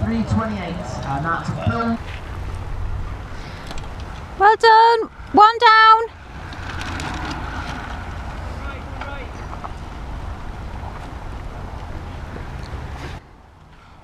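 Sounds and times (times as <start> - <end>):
wind buffeting microphone: 0.0 - 4.4, 6.1 - 13.5.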